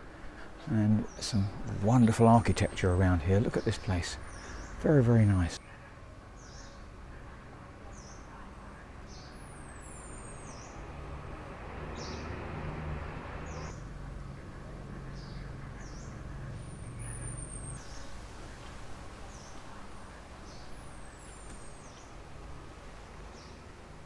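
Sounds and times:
low outdoor background hum: 0.0s - 24.0s.

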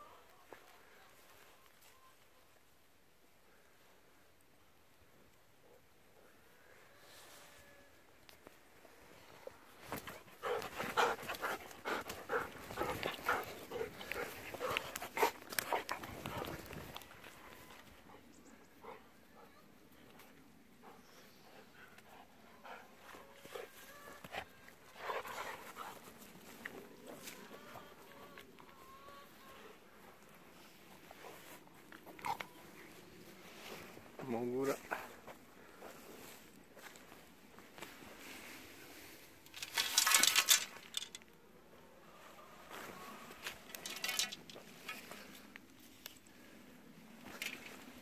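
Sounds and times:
dog panting: 10.0s - 16.7s, 17.9s - 19.5s, 20.8s - 23.7s, 24.9s - 26.4s.

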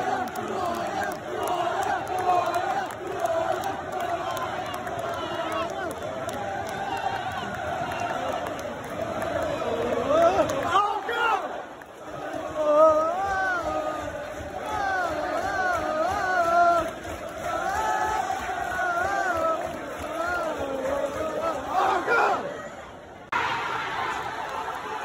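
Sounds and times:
crowd noise: 0.0s - 25.0s
man singing chant loudly: 12.2s - 17.0s.

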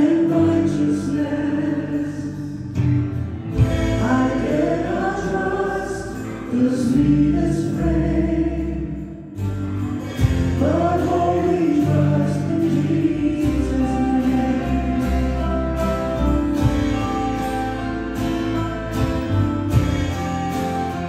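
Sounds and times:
several voices singing together: 0.0s - 2.5s, 3.6s - 9.2s, 10.5s - 15.7s
small band accompaniment: 0.0s - 21.0s.

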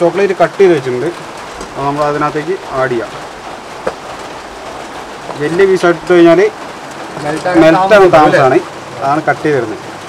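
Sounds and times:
steady background hiss: 0.0s - 10.0s
person speaking: 5.3s - 9.8s.

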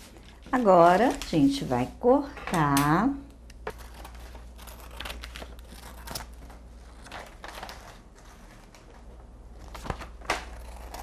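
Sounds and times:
scissors cutting: 3.7s - 6.6s, 10.4s - 11.0s.

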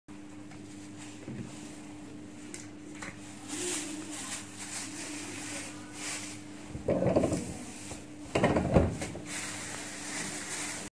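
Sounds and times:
low electrical hum: 0.1s - 10.9s
light clicks and dough rustles: 0.3s - 10.9s.

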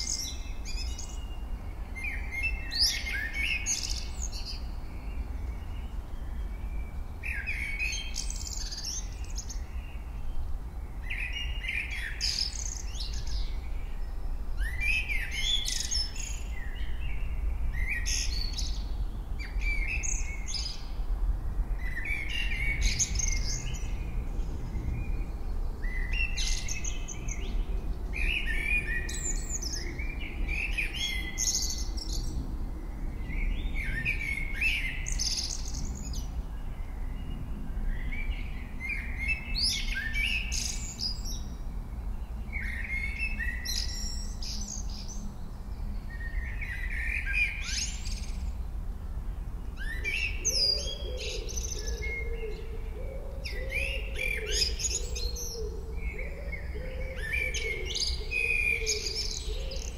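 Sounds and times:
small birds chirping: 0.0s - 21.1s, 21.7s - 48.8s, 49.6s - 59.9s.

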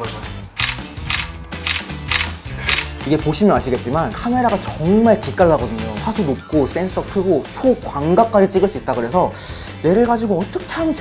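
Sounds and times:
background music: 0.0s - 11.0s
smartphone camera shutter clicks: 0.6s - 3.0s.

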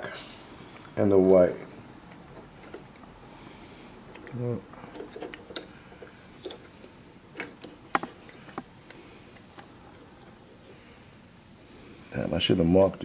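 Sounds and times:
spade connectors clicking onto terminals: 4.1s - 6.7s.

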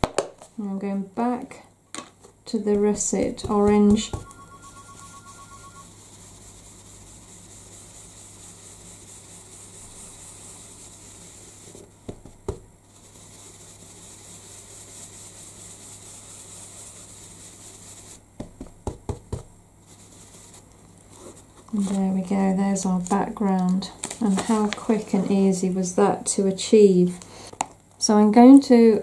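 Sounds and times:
brush tapping on card: 2.7s - 5.0s, 11.6s - 12.7s, 18.4s - 19.5s
brush swirling on card: 2.7s - 22.2s.

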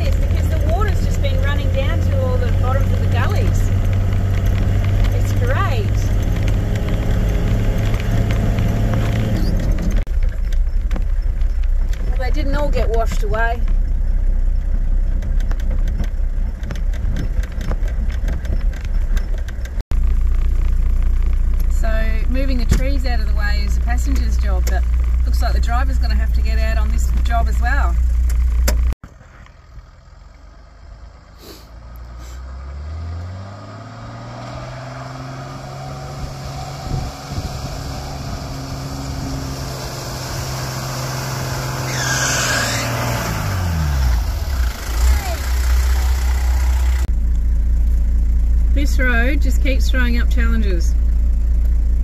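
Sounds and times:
vehicle rattles and knocks: 0.0s - 29.9s
vehicle engine and tyres rumbling: 0.0s - 52.0s.

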